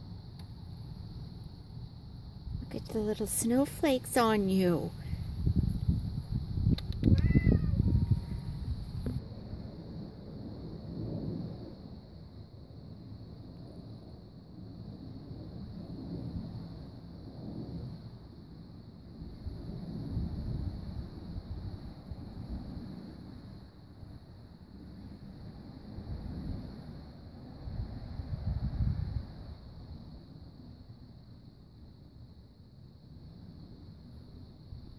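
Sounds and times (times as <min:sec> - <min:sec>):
wind buffeting microphone: 0:02.5 - 0:09.8, 0:27.6 - 0:29.9.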